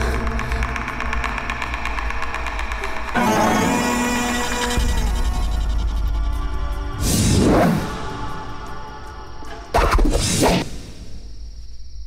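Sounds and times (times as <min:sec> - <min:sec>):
rapid ticking pulse: 0:00.0 - 0:06.9
deep low drone: 0:00.0 - 0:09.5.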